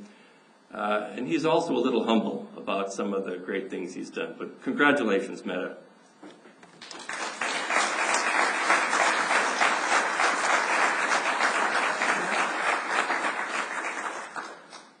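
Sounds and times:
audience applauding: 6.8 - 15.0.

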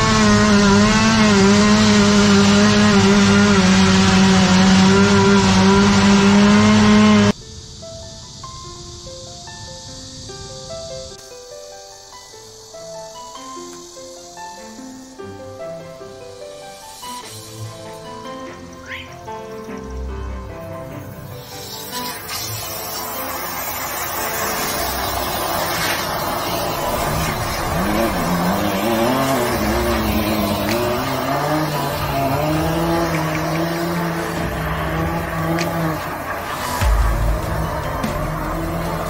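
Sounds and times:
sewer jetter rushing: 0.0 - 7.4, 16.7 - 39.0
background music: 0.0 - 39.0
low steady drone: 19.7 - 39.0.

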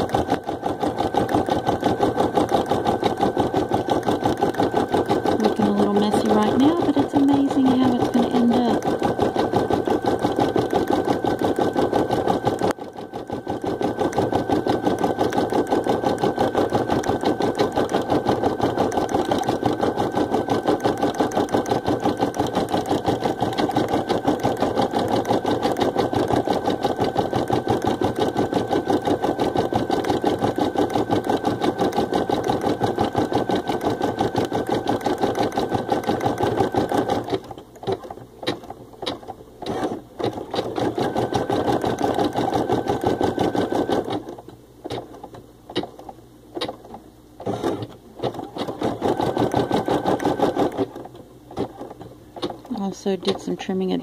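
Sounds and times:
embroidery machine stitching: 0.0 - 54.0.

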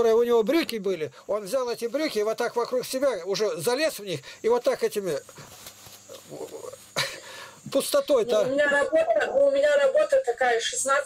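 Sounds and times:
man speaking: 0.0 - 5.4, 7.6 - 8.9
speaker hiss: 0.0 - 11.0.

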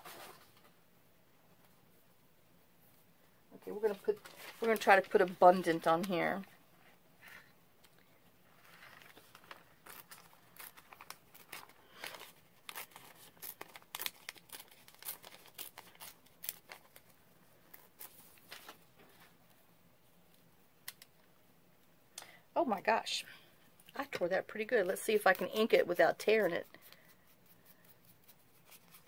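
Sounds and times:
paper page tearing: 8.7 - 17.0.

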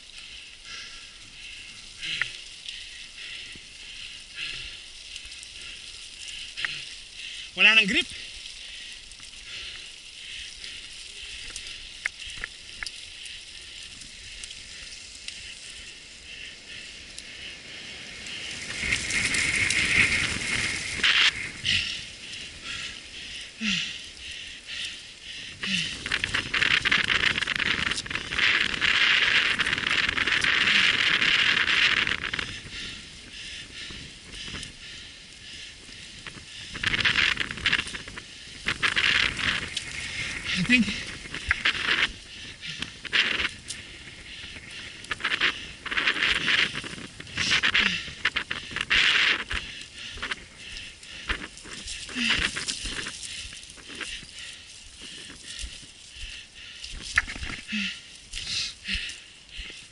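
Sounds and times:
bike rattling: 0.0 - 59.9
bike tyres crunching on leaves: 0.0 - 59.9
rustling noise: 1.4 - 59.9.

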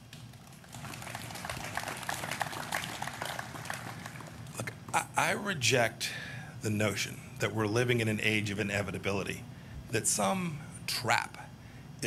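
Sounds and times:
audience applauding: 0.3 - 4.6.

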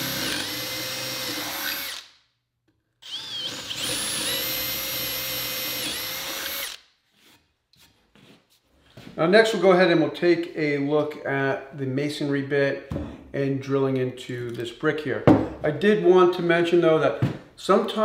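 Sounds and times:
cordless drill boring into wood: 0.0 - 2.1, 3.0 - 6.8.

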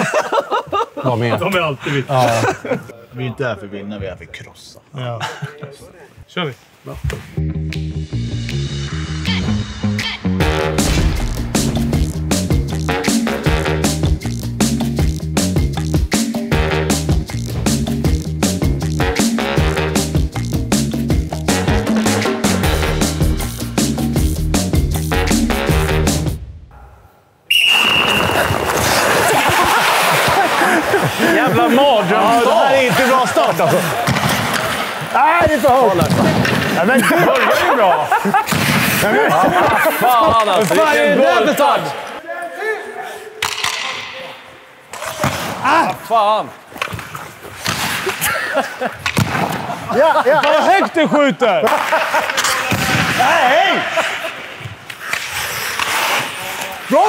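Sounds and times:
referee's whistle blast: 27.5 - 28.6
ice skates scraping on ice: 28.0 - 35.0, 38.6 - 39.1, 46.9 - 48.3, 54.0 - 57.0
knocks of sticks and balls: 43.4 - 44.1, 49.0 - 49.6.

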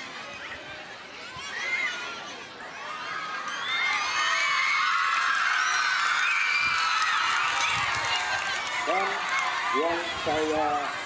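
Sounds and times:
crowd of students cheering: 1.2 - 11.0.

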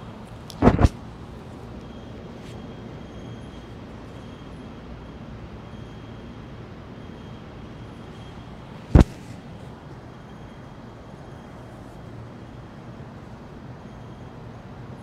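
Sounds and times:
body thumping onto yoga mat: 0.6 - 0.9, 8.9 - 9.3.

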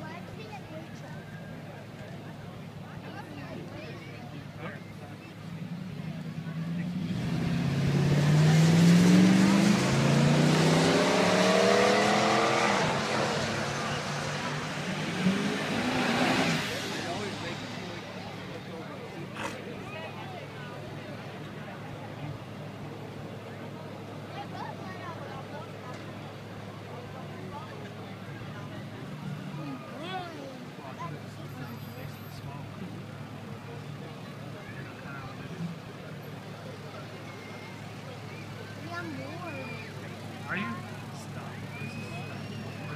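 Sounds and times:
pickup truck engines revving: 0.0 - 42.9
spectators chattering: 0.0 - 42.9.

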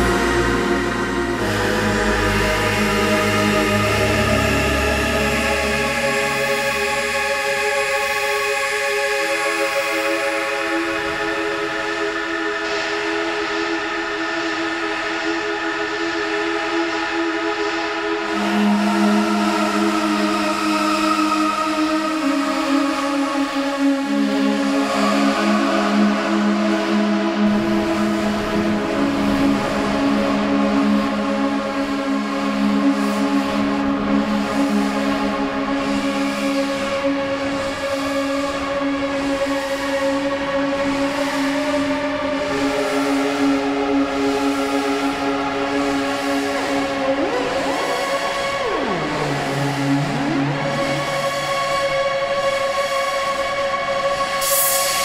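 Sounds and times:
synthesizer pad chords: 0.0 - 55.0.

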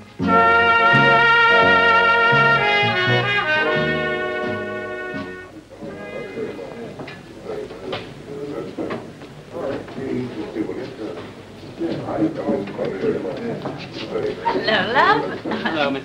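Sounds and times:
cornet holding long note: 0.0 - 7.0
descending bass line: 0.2 - 4.2.

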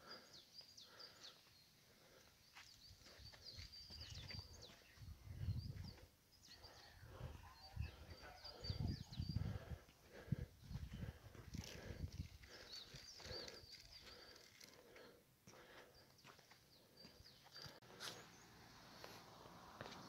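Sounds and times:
faint bird chirps: 0.0 - 9.8, 12.0 - 14.9.

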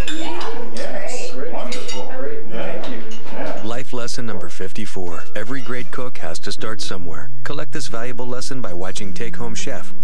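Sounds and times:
cutlery scraping on plates: 1.6 - 2.2, 2.8 - 3.8, 5.4 - 6.2.

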